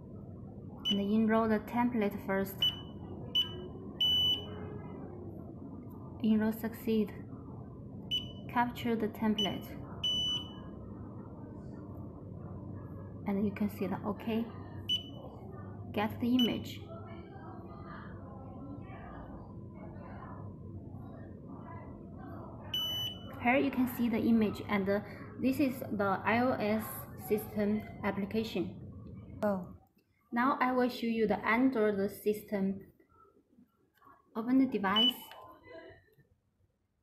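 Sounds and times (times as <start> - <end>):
low room noise: 0.0 - 37.0
scanner buzzer beeping: 2.5 - 4.6, 8.1 - 8.5, 9.4 - 10.7, 14.9 - 15.2, 22.8 - 23.3.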